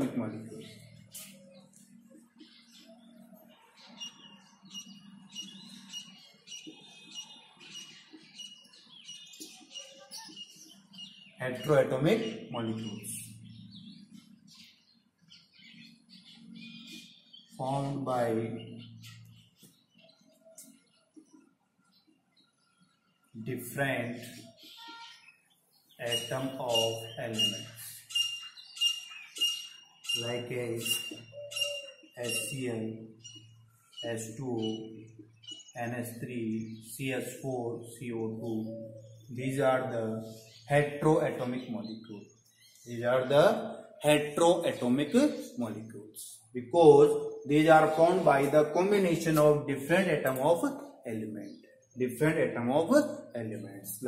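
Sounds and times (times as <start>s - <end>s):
small bird chirping: 0.0s - 23.4s, 24.0s - 37.2s, 40.1s - 52.0s
marker squeaking on whiteboard: 1.0s - 1.7s, 8.1s - 10.7s, 24.2s - 25.2s, 30.8s - 32.6s.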